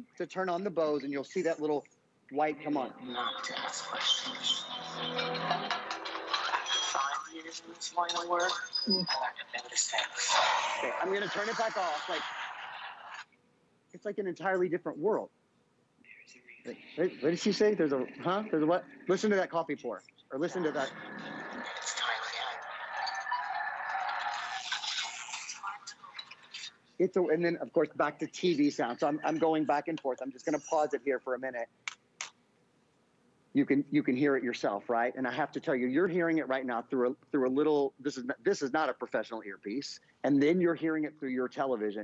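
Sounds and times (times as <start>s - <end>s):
voice over music: 20.4s - 22.7s.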